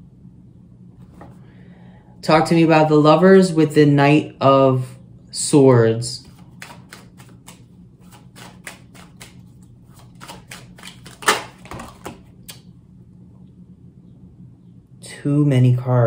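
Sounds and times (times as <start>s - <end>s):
cards being shuffled: 6.2s - 12.6s.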